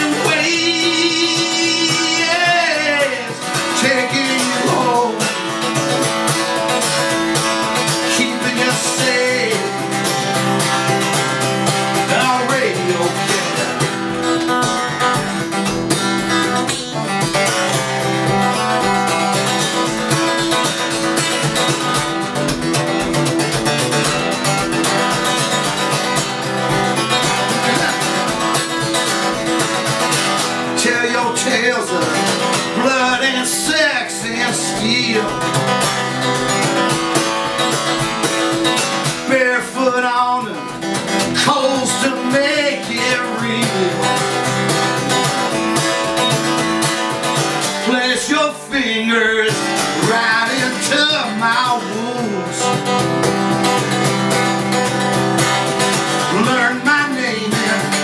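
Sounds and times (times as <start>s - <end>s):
acoustic guitar strummed: 0.0s - 58.0s.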